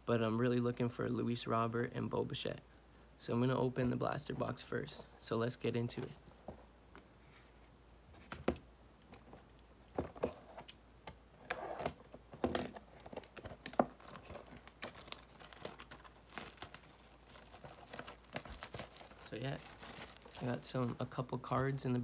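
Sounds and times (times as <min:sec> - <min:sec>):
plastic wrap crinkling and tearing: 0:12.6 - 0:21.8.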